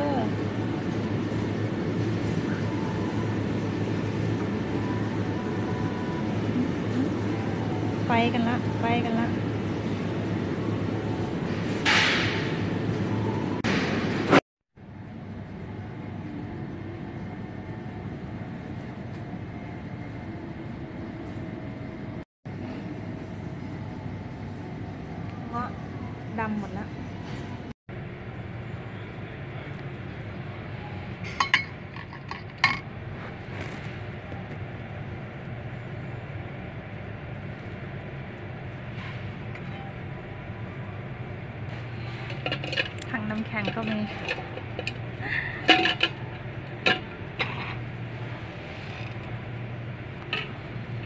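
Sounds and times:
shop background hum: 0.0 - 51.0.

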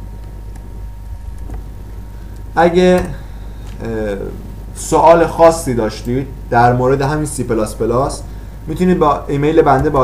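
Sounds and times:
low electrical hum and hiss: 0.0 - 10.0.

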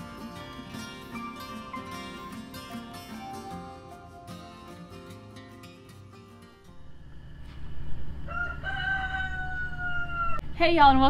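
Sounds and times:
rooster crowing: 8.1 - 10.4.

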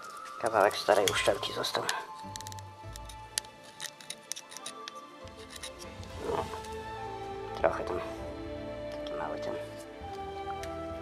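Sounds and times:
background music: 0.0 - 11.0
knife tip scraping metal: 2.1 - 6.7.

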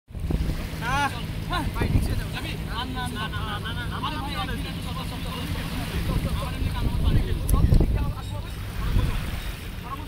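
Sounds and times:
wind rumbling on microphone: 0.1 - 2.8, 4.6 - 10.0.

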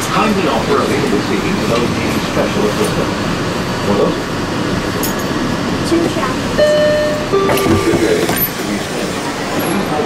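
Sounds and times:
faint passenger voices: 0.0 - 10.0
monorail cabin rumble and hiss: 0.0 - 10.0.

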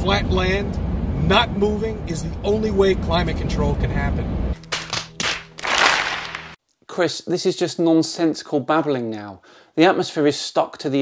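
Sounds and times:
hands slapping foreheads: 4.6 - 6.6.

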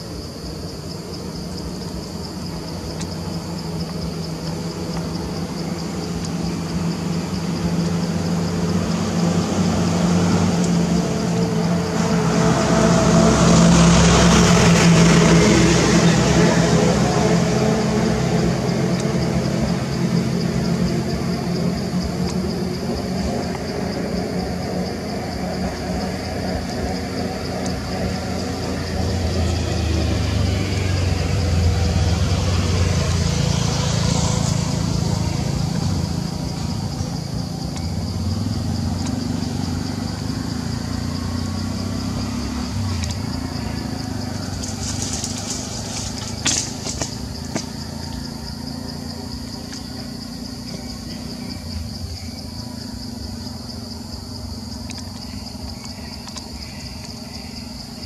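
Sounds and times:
vehicle passing: 0.0 - 55.6
traffic engine hum: 0.0 - 58.0.

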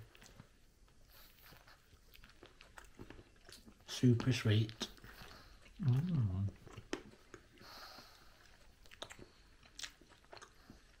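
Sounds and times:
people chewing: 0.0 - 11.0.

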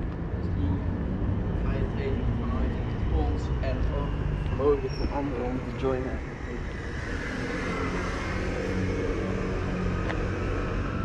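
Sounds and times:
low rumble of city traffic: 0.0 - 11.0.

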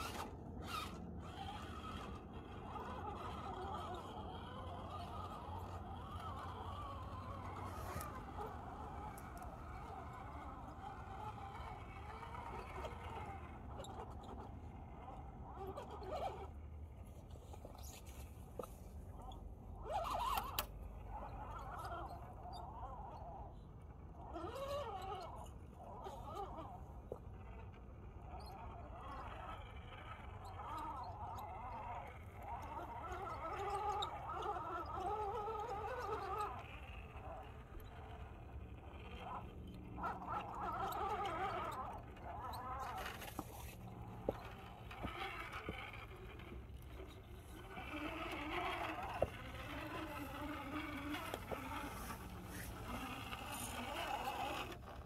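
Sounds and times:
electric motors whining: 0.0 - 55.0.

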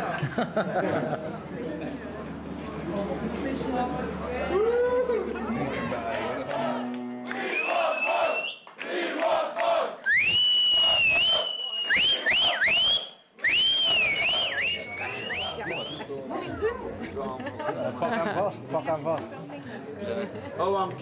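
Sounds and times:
shrill swooping whistles: 7.5 - 8.6, 10.0 - 16.0.

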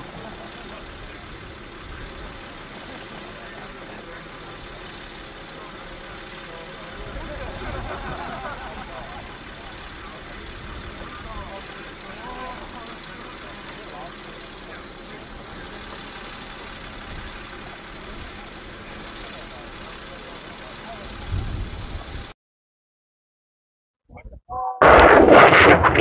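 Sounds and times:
faint distant voices: 0.0 - 21.4
distant heavy engine running: 0.0 - 22.3
low rumble: 24.2 - 26.0.

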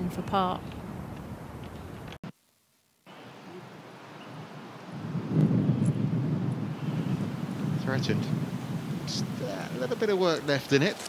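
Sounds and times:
wind rumbling on microphone: 3.6 - 11.0.

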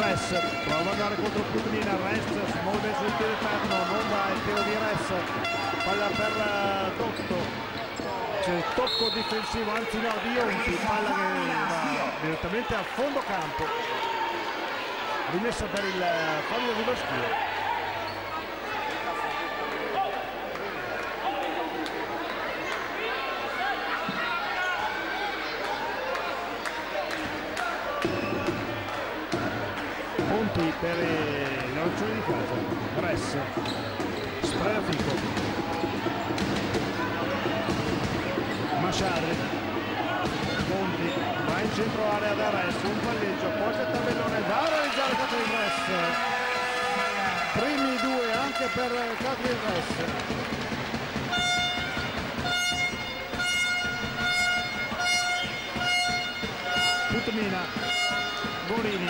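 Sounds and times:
crowd voices: 0.0 - 59.0
horn-like tone: 3.6 - 6.8, 51.3 - 58.8
basketball bouncing on hardwood: 49.8 - 58.7.

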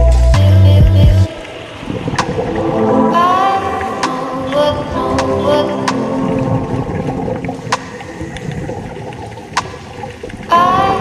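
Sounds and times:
music: 0.0 - 1.5, 2.2 - 8.0
underwater rumbling wash: 0.0 - 11.0.

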